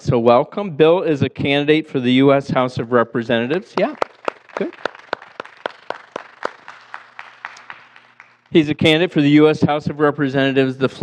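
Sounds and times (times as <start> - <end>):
scattered applause: 3.8 - 8.8.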